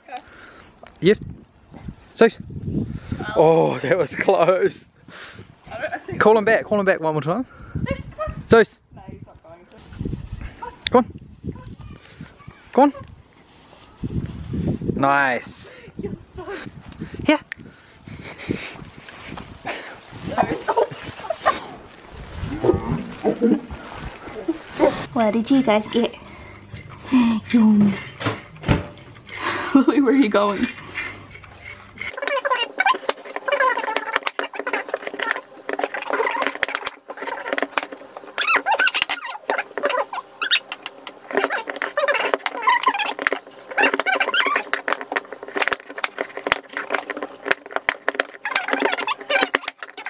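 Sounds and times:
person making wordless sounds: 26.9s - 28.1s, 29.3s - 37.8s
squeaky voice-like sounds: 31.6s - 36.6s, 38.4s - 40.7s, 41.3s - 44.8s, 48.4s - 50.0s.

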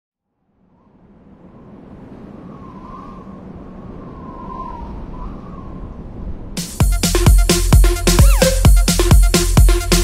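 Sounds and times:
wind noise: 0.5s - 6.8s
faint wavering whistle: 2.4s - 6.1s, 8.2s - 8.7s.

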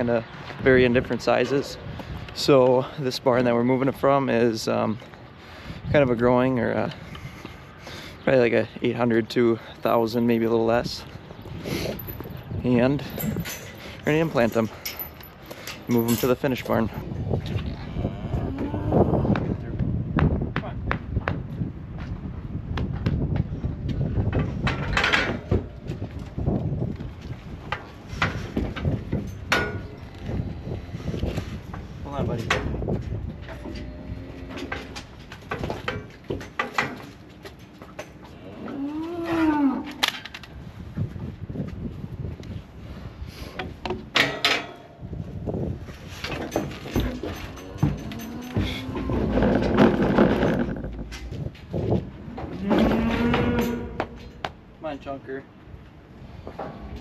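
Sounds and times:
steers mooing: 17.6s - 19.4s, 33.3s - 35.1s, 47.0s - 50.8s, 52.3s - 54.4s
clanks from steel cattle chute: 29.2s - 30.0s, 44.1s - 44.9s, 46.2s - 50.0s, 52.3s - 54.5s.

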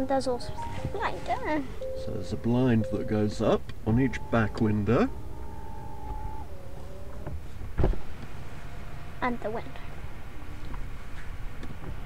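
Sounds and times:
sunshade motor whine: 0.0s - 7.6s.

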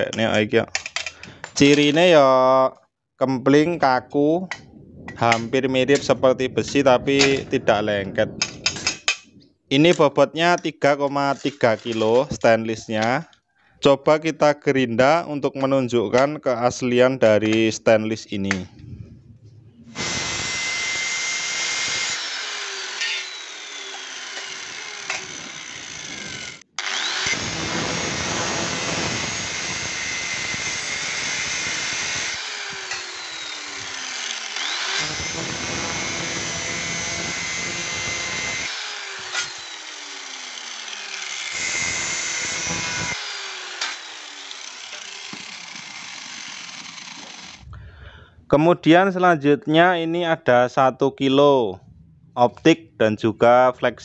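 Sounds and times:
angle grinder grinding metal: 4.5s - 9.4s, 11.2s - 13.2s, 19.9s - 47.7s
grinder disc winding down: 20.0s - 47.6s.

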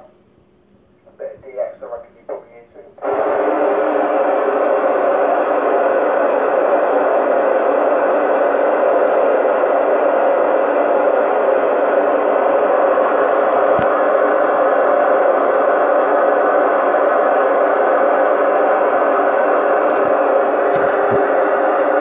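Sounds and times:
radio white noise hiss: 1.0s - 22.0s.

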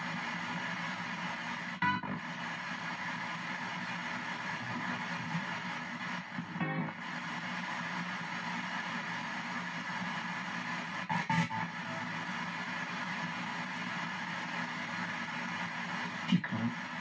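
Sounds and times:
chopped radio static: 0.0s - 17.0s
snatch of broadcast sound: 0.0s - 17.0s.

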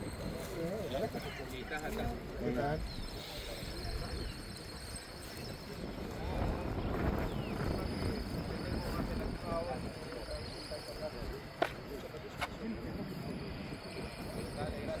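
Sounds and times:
distant people talking: 0.0s - 15.0s.

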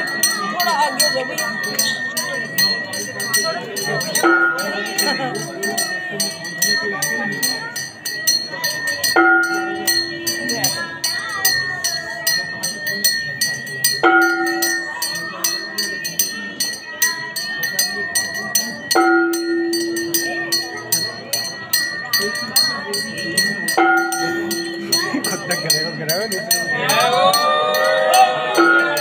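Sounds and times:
metal bells struck rapidly: 0.0s - 29.0s
steady high ringing tone: 0.0s - 29.0s
voices chanting: 0.0s - 29.0s.

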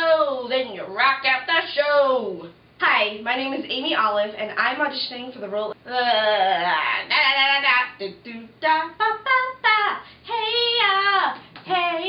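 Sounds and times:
woman singing wordless notes: 5.8s - 12.0s.

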